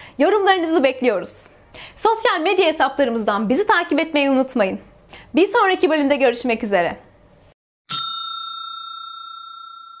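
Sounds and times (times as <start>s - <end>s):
bell-like chime: 7.9s - 10.0s.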